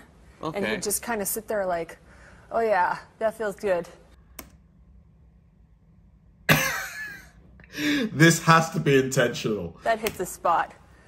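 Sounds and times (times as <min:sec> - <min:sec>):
man laughing: 0:06.5 - 0:08.1.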